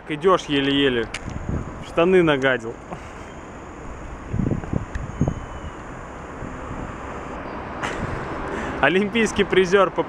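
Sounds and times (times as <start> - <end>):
traffic hum: 0.0 - 10.0
wind buffeting microphone: 0.9 - 2.0, 3.7 - 7.1, 7.9 - 8.5.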